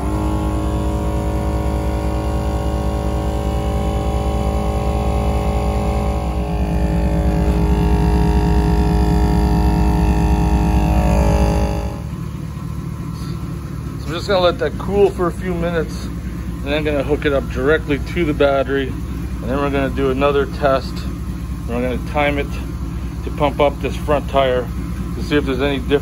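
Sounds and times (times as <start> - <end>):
air compressor running: 0.0 - 26.0.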